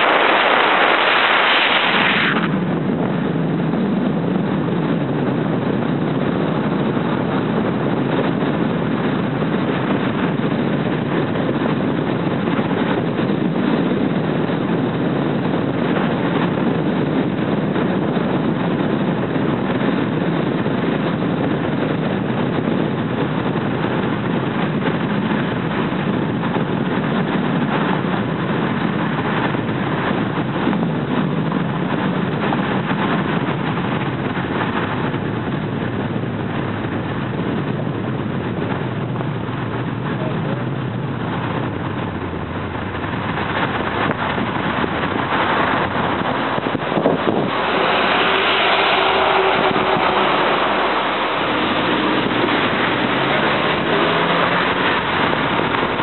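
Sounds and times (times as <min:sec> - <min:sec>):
car driving on road: 0:00.0 - 0:56.0.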